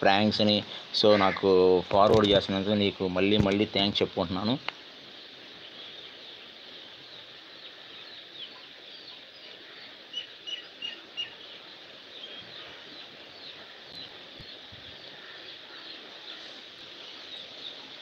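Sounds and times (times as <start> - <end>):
small birds chirping: 0.0 - 18.0
steady hiss: 0.0 - 18.0.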